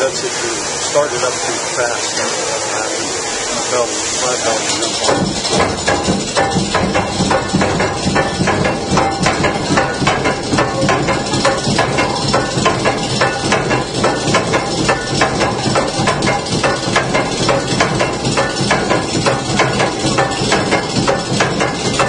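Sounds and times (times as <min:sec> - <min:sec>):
stamping mill pounding clatter: 0:00.0 - 0:22.0.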